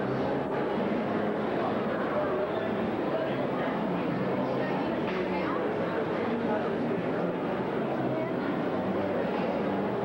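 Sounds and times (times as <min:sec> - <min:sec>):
crowded indoor hall din: 0:00.0 - 0:10.0.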